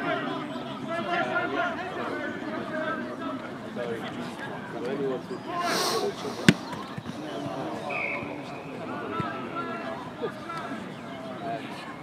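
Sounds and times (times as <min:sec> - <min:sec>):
low chatter of voices: 0:00.0 - 0:12.0
ball bouncing on turf: 0:06.4 - 0:07.6.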